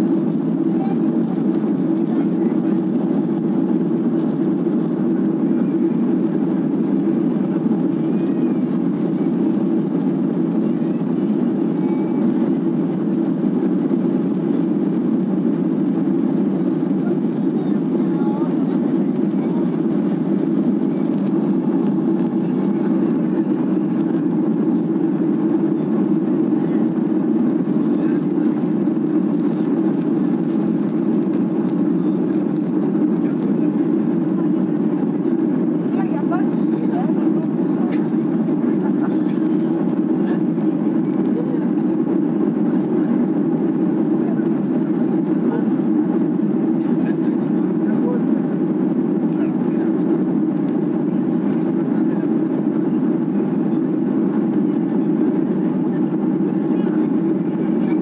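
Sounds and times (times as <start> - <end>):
jet engines droning in cabin: 0.0 - 58.0.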